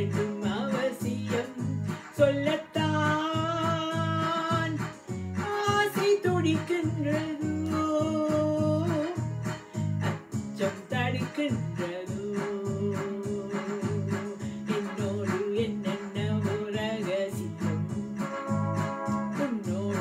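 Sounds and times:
woman singing love song: 0.0s - 9.2s, 10.0s - 18.4s, 19.4s - 20.0s
electronic keyboard accompaniment: 0.0s - 20.0s.

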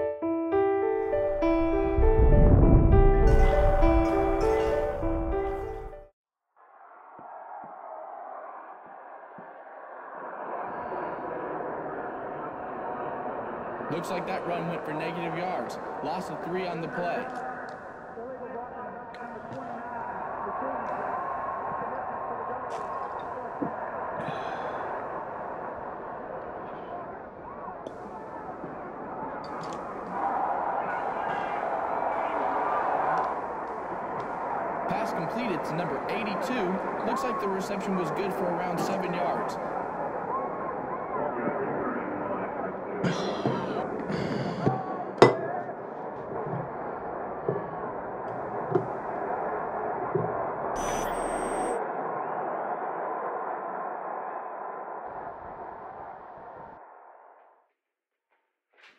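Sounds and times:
stadium crowd on tv: 6.6s - 57.7s
indistinct commentary: 13.8s - 24.9s, 26.7s - 45.3s.

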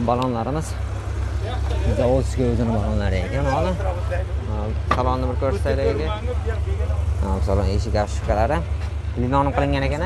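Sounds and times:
voices talking: 0.0s - 10.0s.

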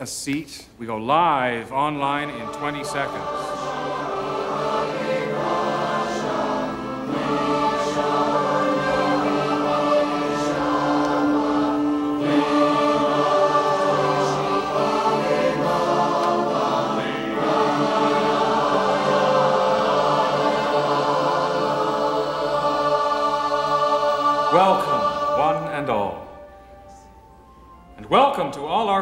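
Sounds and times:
mixed choir singing: 1.7s - 26.6s.

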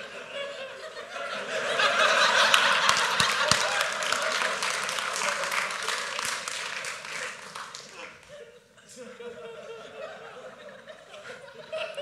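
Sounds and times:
audience laughing: 0.0s - 12.0s
audience clapping: 1.8s - 8.4s.

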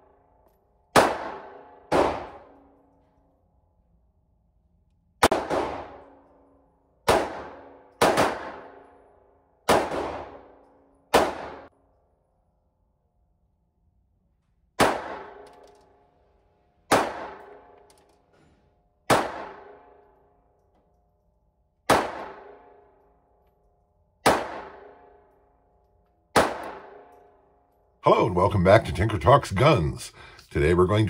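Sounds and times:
pistol shots with ringing echo: 0.2s - 3.0s, 5.2s - 11.7s, 14.8s - 16.0s, 16.8s - 17.9s, 18.9s - 20.6s, 21.8s - 23.4s, 24.2s - 25.6s, 26.2s - 27.6s.

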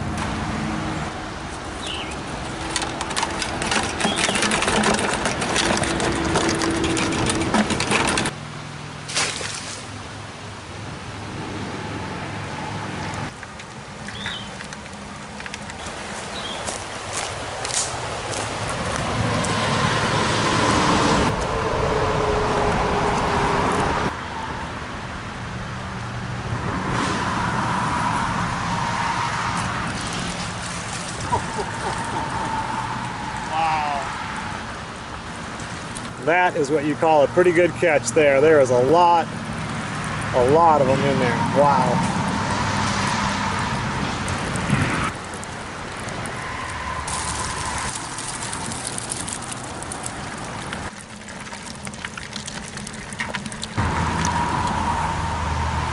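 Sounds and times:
river water running and splashing: 0.0s - 21.4s, 29.5s - 55.2s
crayfish and wire trap rattling: 2.5s - 8.4s, 47.0s - 53.8s.

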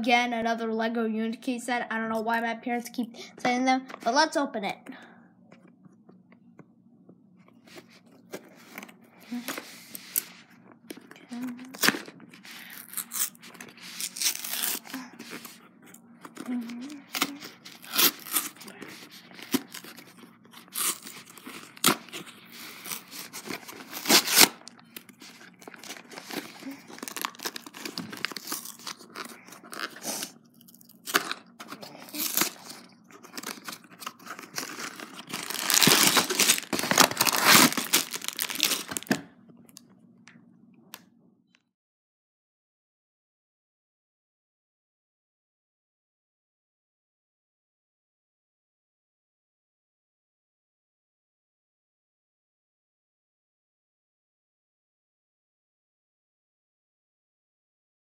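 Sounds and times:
cardboard box tearing: 11.7s - 14.8s, 20.7s - 24.6s, 25.7s - 30.3s, 31.0s - 32.8s, 33.4s - 39.2s
packaging rustling: 16.7s - 39.2s.

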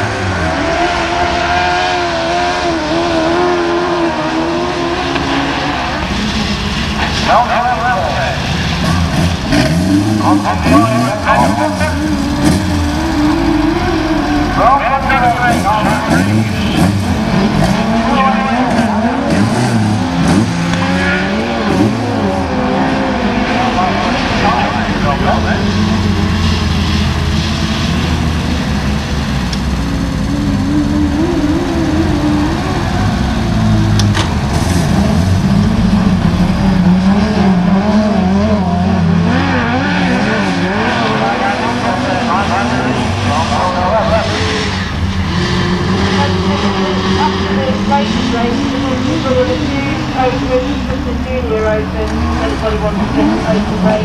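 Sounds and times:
racing buggy engines revving: 0.0s - 54.0s.

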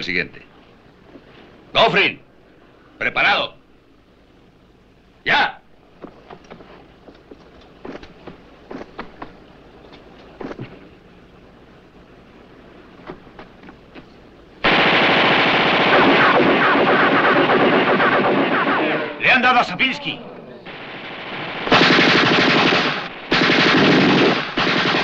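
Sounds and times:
machine gun firing: 14.6s - 19.2s, 20.7s - 25.0s.

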